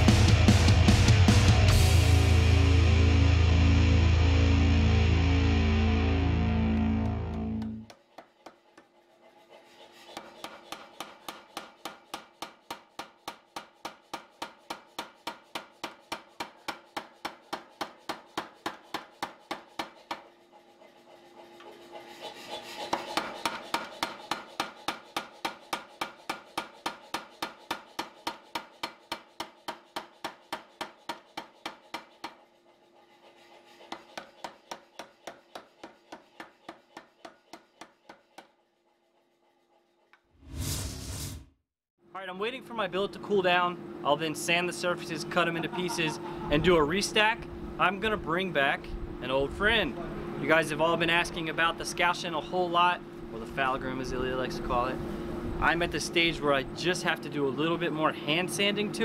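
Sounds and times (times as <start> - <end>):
background music: 0.0 - 7.9
power hammer striking steel: 10.2 - 20.3, 22.9 - 32.4, 33.9 - 38.4.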